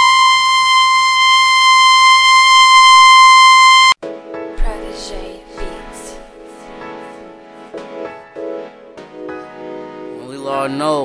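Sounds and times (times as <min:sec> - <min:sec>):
buzzy electronic beep tone: 0:00.0 - 0:04.0.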